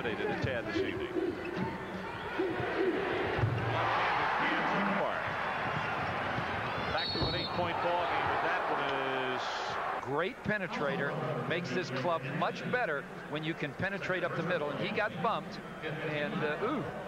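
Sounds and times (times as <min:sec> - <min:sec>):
arena crowd noise: 0:00.0 - 0:17.0.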